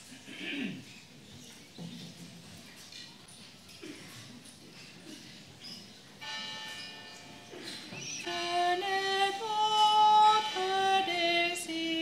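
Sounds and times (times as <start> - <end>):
church bell ringing: 6.2 - 9.0.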